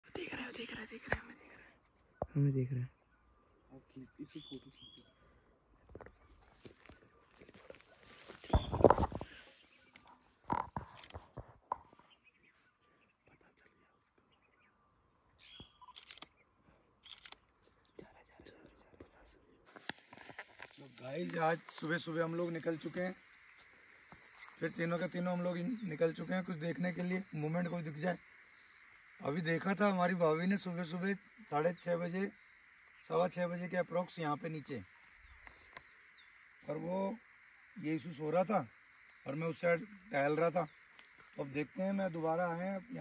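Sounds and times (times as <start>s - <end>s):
person whispering: 13.2s - 14.3s, 18.0s - 19.6s.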